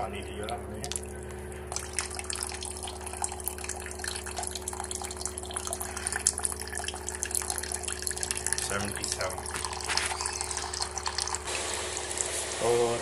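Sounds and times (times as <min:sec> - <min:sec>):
water trickling and dripping: 0:00.0 - 0:12.4
pump humming: 0:00.0 - 0:13.0.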